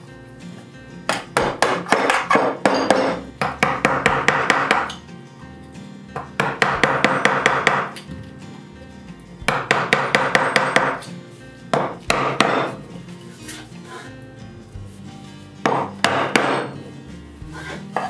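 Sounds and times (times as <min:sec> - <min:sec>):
chisel tapping into wood: 0:09.5 - 0:11.0.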